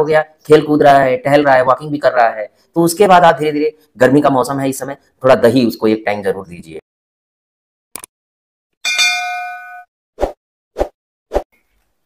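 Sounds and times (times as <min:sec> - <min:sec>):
bell-like ding: 0:08.8 - 0:09.9.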